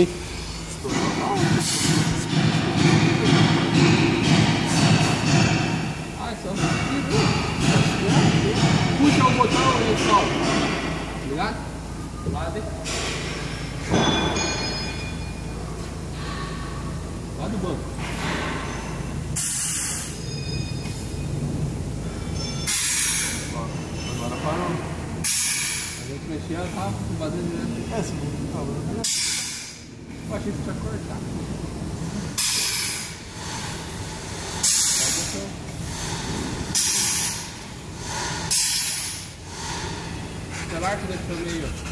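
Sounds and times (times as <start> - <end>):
compressed air hissing: 19.3 - 20.2, 22.6 - 23.6, 25.2 - 26.1, 29.0 - 30.0, 32.0 - 41.9.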